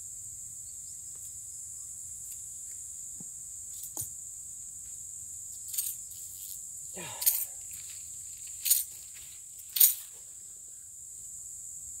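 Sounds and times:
insects droning: 0.0s - 12.0s
short scuffs or rustles: 7.2s - 10.3s.

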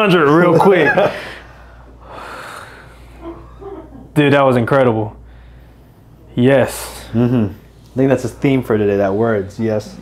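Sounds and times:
man exhaling breathily: 1.1s - 3.2s.

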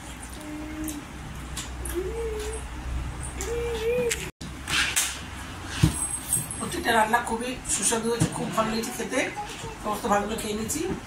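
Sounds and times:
low steady hum: 0.0s - 4.3s.

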